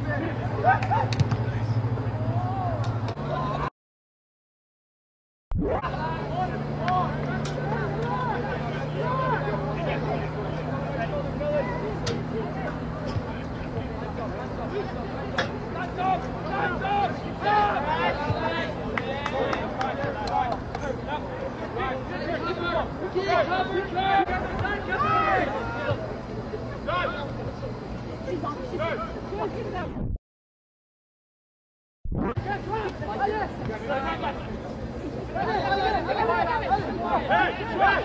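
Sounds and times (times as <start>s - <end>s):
distant people shouting: 0.1s - 3.7s, 5.8s - 27.4s, 35.2s - 38.0s.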